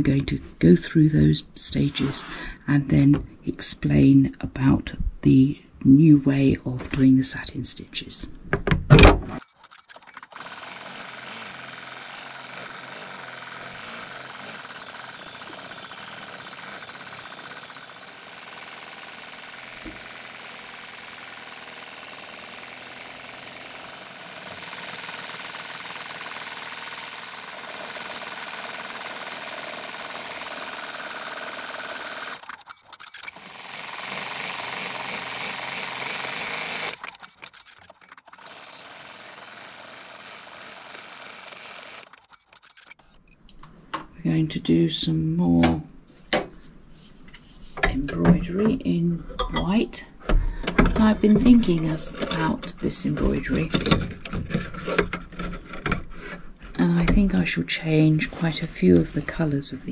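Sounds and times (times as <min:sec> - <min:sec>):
embroidery machine needle chatter: 0:09.4 - 0:43.1.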